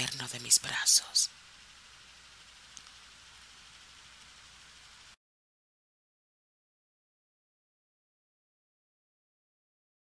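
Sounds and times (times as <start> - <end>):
background hiss: 0.0 - 5.2
low hum: 0.0 - 5.2.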